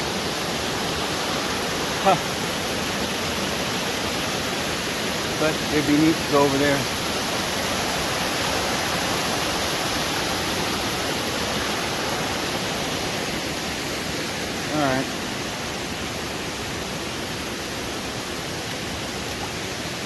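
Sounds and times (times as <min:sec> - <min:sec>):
creek rushing over rocks: 0:00.0 - 0:20.0.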